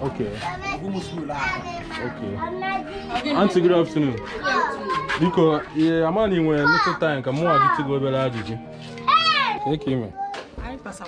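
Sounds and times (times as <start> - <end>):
children chattering and calling out: 0.0 - 10.6.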